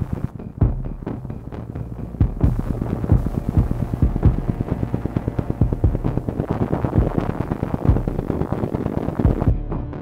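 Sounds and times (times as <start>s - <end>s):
steady hum: 0.0s - 10.0s
throbbing low electromagnetic pulses: 0.0s - 10.0s.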